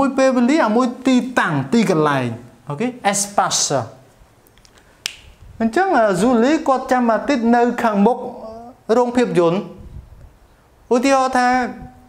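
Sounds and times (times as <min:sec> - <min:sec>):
man speaking: 0:00.0 - 0:04.0, 0:05.6 - 0:09.8, 0:10.9 - 0:11.9.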